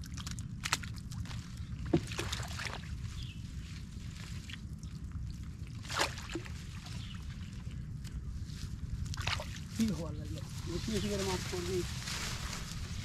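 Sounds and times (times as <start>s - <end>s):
low rumble: 0.0s - 13.0s
stems and leaves crackling: 0.0s - 13.0s
footsteps in tall grass: 9.7s - 13.0s.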